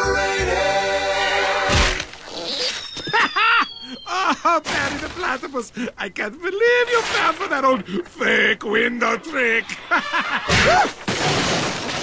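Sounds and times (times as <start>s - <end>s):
man laughing: 3.0s - 4.7s, 9.6s - 10.8s
cartoon glass shattering: 10.4s - 12.0s.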